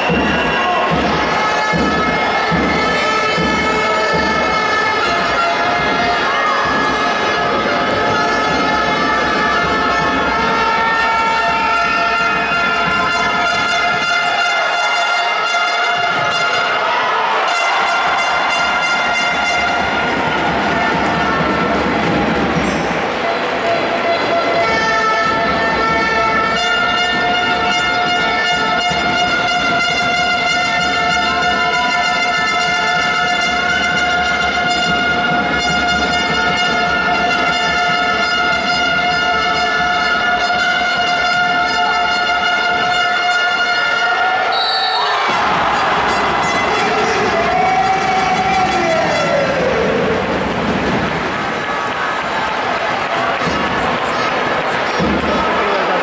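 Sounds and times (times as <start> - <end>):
basketball crowd noise: 0.0 - 56.0
horn-like tone: 7.8 - 20.1, 24.5 - 49.6.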